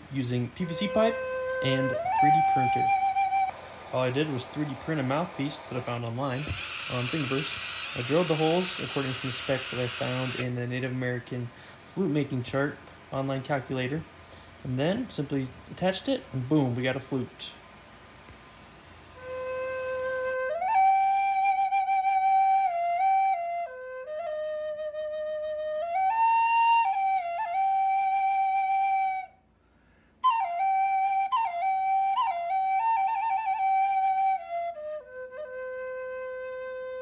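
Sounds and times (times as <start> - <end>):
flute slow melody: 0.0 - 10.5, 19.1 - 29.5, 30.2 - 37.0.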